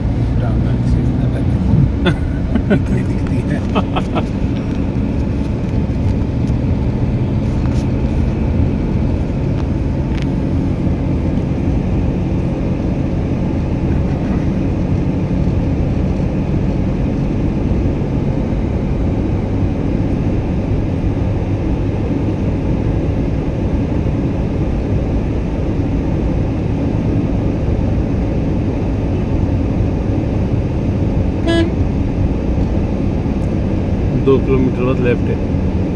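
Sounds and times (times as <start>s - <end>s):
car engine and road noise: 0.0s - 35.9s
car horn toot: 31.4s - 31.8s.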